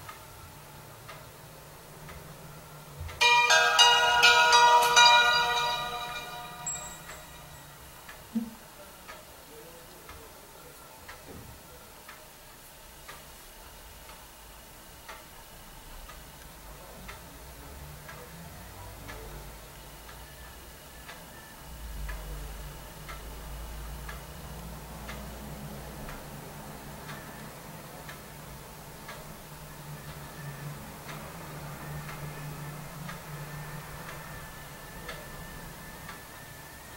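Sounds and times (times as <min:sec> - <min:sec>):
faint steady ticking: 0:00.0 - 0:36.9.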